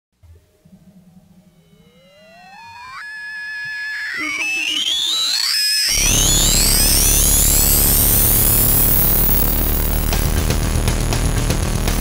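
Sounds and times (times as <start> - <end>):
electronic music track: 0.2 - 12.0
rising synthesizer sweep: 0.4 - 11.1.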